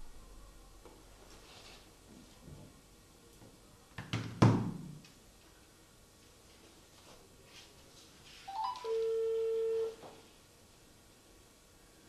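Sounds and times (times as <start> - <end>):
telephone ringback tone: 8.5 - 10.1.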